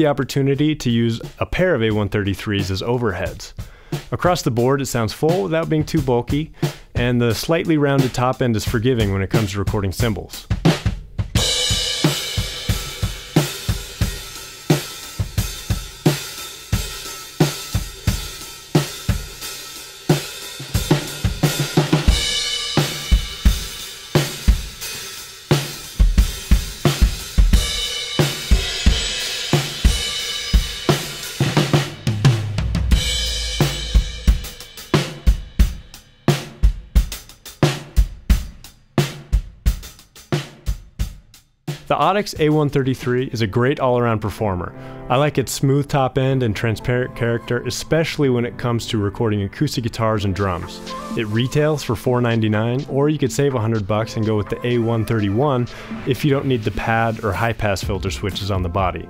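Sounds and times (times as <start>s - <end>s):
drum kit played with sticks: 0.0s - 44.5s, 47.8s - 59.0s
cymbal crashes: 27.6s - 35.6s
low drum rumble: 32.3s - 34.7s.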